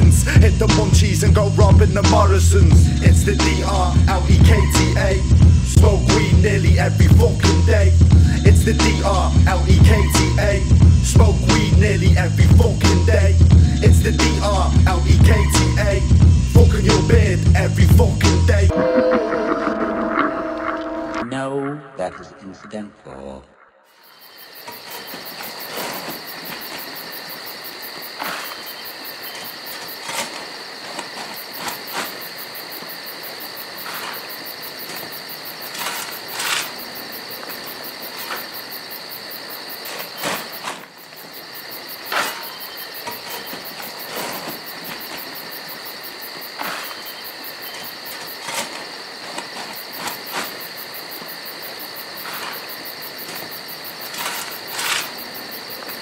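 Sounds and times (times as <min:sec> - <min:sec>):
crickets chirping: 0:00.0 - 0:56.0.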